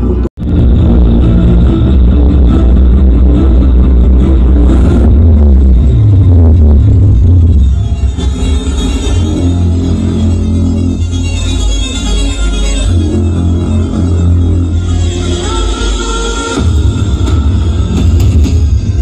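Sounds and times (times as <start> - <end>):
loud electronic dance music: 0.0 - 19.0.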